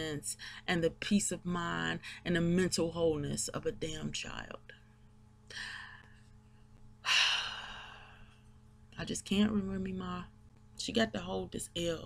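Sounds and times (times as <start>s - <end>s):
woman's breathy sigh: 7.1s - 8.2s.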